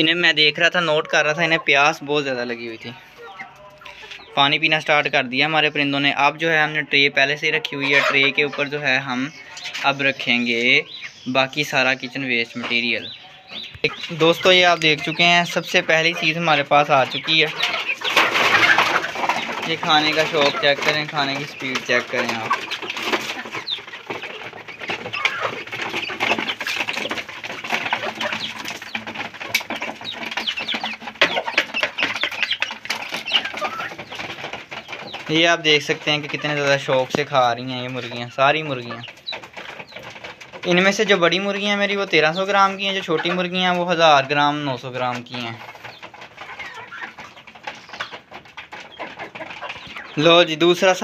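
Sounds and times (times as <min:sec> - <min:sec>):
beaks pecking on tray: 0:00.0 - 0:51.0
young chickens clucking and peeping: 0:00.0 - 0:51.0.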